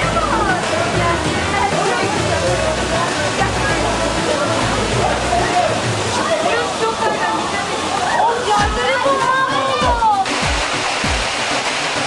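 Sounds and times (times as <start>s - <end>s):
young people talking and calling: 0.0s - 10.3s
waterfall rushing: 0.0s - 12.0s.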